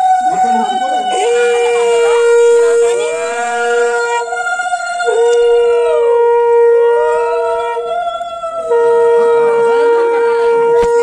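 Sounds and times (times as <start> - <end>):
conch shell steady note: 0.0 - 11.0
conch shell wavering pitch: 0.0 - 11.0.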